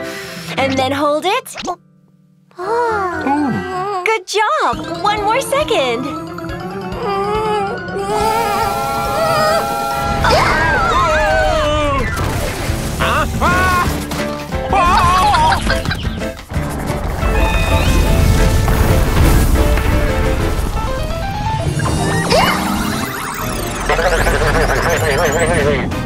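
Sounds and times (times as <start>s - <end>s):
cartoon music: 4.7s - 12.3s, 14.6s - 16.4s, 21.6s - 26.0s.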